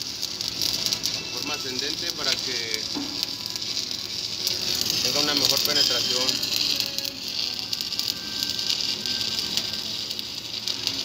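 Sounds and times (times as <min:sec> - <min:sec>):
welding arc crackling and hissing: 0:00.0 - 0:11.0.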